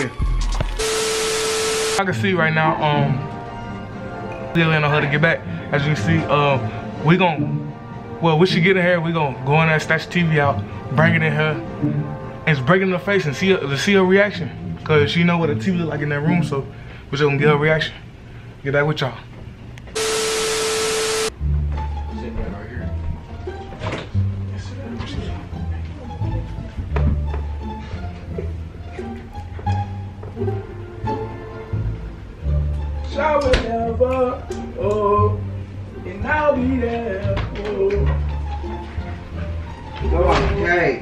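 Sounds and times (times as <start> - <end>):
static hiss with steady tone: 0.8 - 2.0, 19.9 - 21.3.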